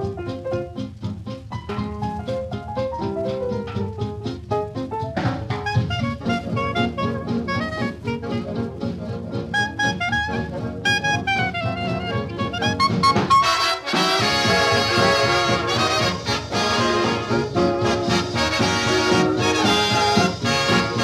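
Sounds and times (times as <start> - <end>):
swing big band music: 0.0 - 21.0.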